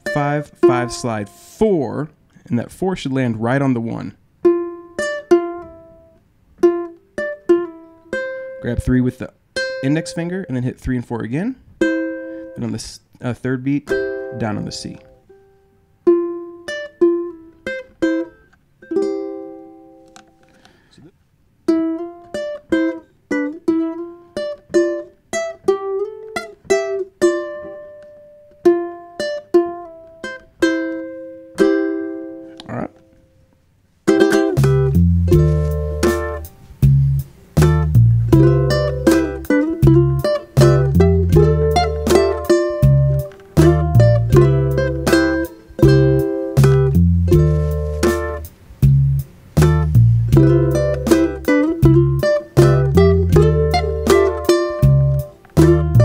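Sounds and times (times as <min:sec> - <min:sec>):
ukulele playing double stops: 0:00.0 - 0:01.9, 0:13.9 - 0:20.8, 0:21.7 - 0:32.8, 0:34.1 - 0:56.0
backing track with bass and drums: 0:34.1 - 0:56.0.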